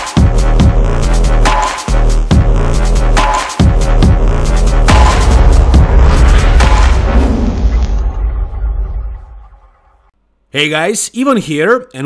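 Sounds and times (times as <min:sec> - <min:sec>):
deep rumbling boom: 0:04.0 - 0:10.1.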